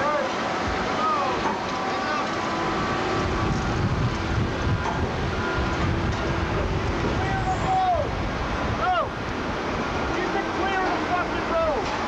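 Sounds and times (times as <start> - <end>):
heavy machinery diesel engines rumbling: 0.0 - 12.0
wind on microphone: 2.7 - 10.2.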